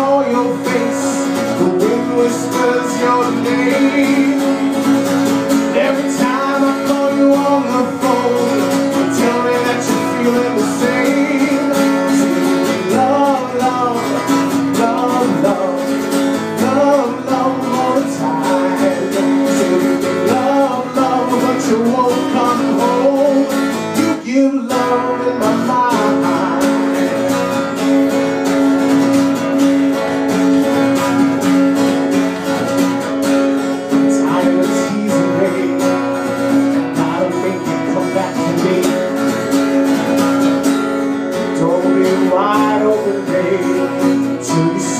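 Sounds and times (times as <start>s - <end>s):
man singing: 0.0s - 28.5s, 33.2s - 44.9s
acoustic guitar strumming: 0.0s - 44.9s.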